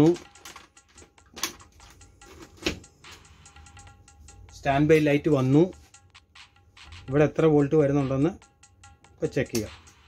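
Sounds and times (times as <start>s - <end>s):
multimeter probes clicking: 0.0s - 2.8s.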